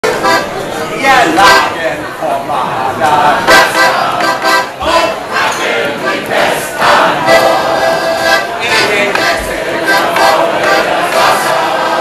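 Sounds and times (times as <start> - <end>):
choir singing: 2.8 - 4.6, 5.3 - 12.0.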